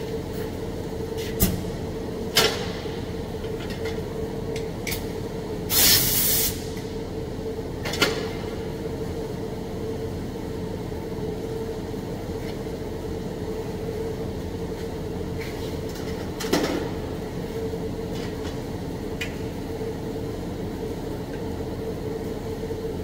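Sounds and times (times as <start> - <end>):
steady machine hum: 0.0 - 23.0
short loud air hiss: 5.7 - 6.7.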